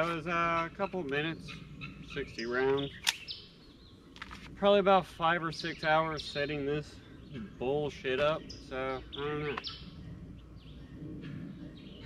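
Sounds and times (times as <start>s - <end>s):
low background rumble: 0.0s - 12.0s
faint bird chirps: 5.6s - 12.0s.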